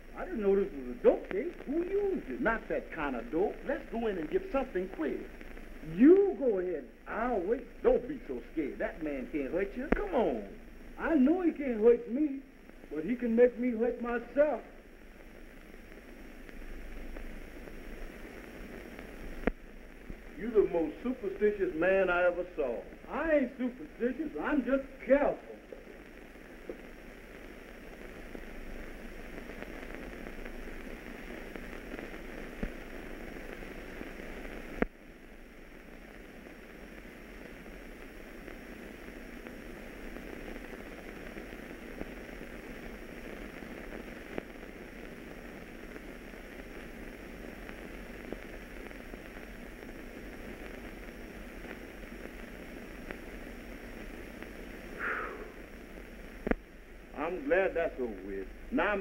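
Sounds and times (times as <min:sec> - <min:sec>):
film soundtrack hiss and crackle: 0:00.0 - 0:59.0.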